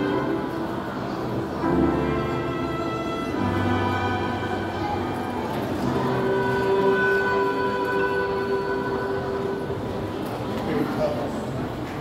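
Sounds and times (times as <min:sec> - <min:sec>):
violin cello and piano chord: 0:00.0 - 0:09.7.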